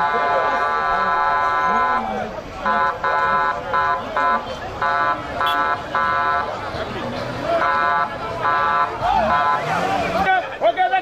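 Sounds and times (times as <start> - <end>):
crowd voices: 0.0 - 11.0
vehicle horn blasts: 5.4 - 6.2.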